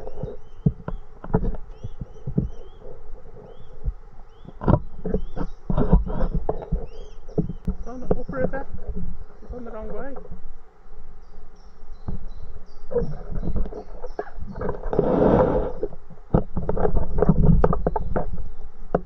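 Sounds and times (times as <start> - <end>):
cygnets peeping: 0.0 - 19.0.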